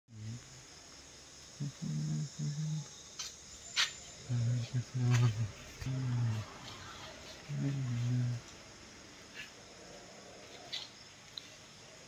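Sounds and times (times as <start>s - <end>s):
man murmuring: 1.6s - 2.9s, 4.3s - 6.6s, 7.4s - 8.4s.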